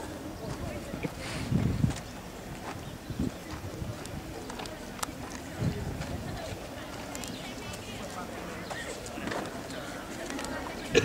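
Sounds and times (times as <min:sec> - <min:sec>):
chatter of voices: 0:00.0 - 0:11.0
footsteps on asphalt: 0:00.3 - 0:10.8.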